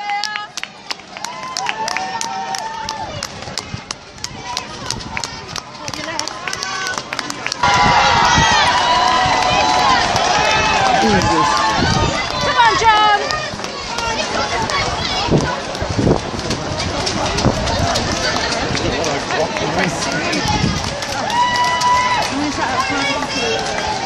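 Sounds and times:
crowd shouting and cheering: 0.0s - 24.0s
runners' footsteps on road: 0.0s - 24.0s.

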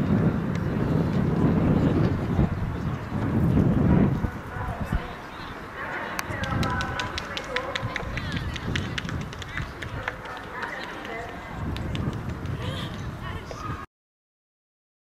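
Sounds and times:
faint distant voices: 0.0s - 13.9s
wind rumbling on microphone: 0.0s - 13.9s.

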